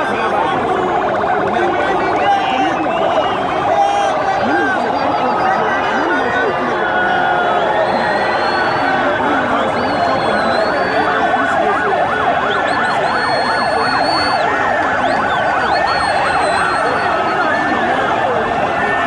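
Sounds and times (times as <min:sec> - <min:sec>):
large crowd din: 0:00.0 - 0:19.0
siren yelping and wailing: 0:00.0 - 0:19.0.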